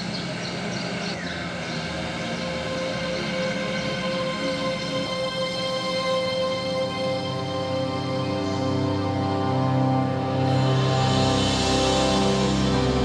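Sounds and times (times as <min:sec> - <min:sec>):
dramatic sustained score: 0:00.0 - 0:13.0.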